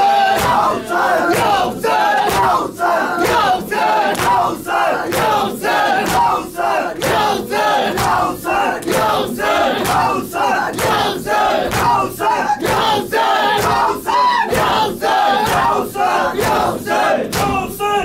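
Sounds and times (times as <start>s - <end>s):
men chanting in unison: 0.0s - 18.0s
hands slapping chests: 2.2s - 2.6s, 4.1s - 4.5s, 6.0s - 6.4s, 11.7s - 12.0s.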